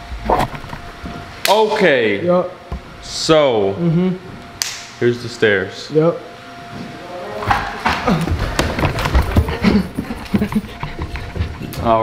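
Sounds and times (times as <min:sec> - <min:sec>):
footsteps on carpeted stairs: 0:07.8 - 0:12.0.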